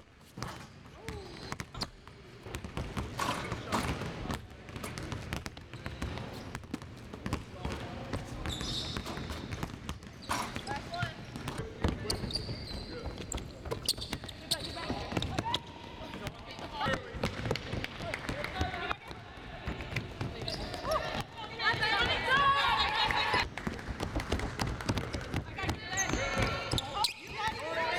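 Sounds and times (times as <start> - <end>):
basketballs bouncing on hardwood: 0.3 - 27.9.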